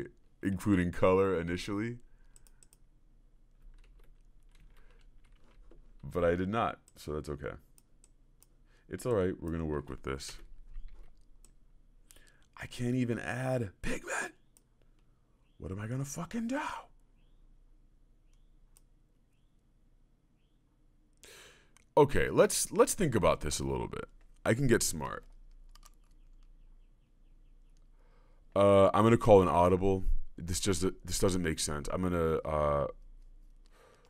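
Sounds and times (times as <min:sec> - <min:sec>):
faint clicks: 0:02.2 - 0:02.9, 0:07.7 - 0:08.6, 0:09.4 - 0:12.6, 0:18.3 - 0:18.9, 0:21.1 - 0:22.0, 0:25.2 - 0:26.7
computer keyboard clicking: 0:03.6 - 0:06.1, 0:25.2 - 0:26.5.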